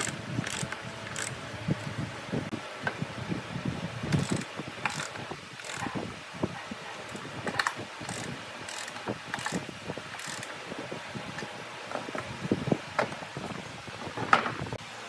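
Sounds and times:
ratchet pawl clicking: 0.0 - 1.4, 4.1 - 5.9, 7.1 - 10.5.

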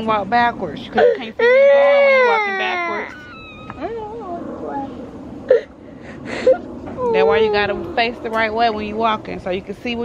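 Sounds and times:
young child crying: 1.0 - 4.9.

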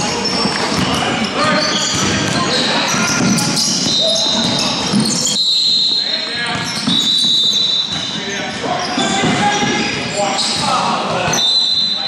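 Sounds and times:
basketball bouncing on court: 0.0 - 10.8
high-pitched shoe squeaks: 0.0 - 12.0.

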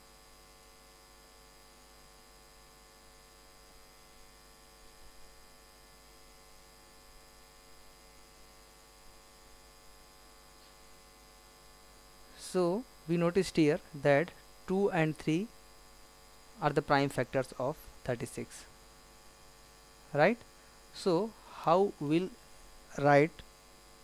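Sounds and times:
faint mains hum: 0.0 - 24.0.

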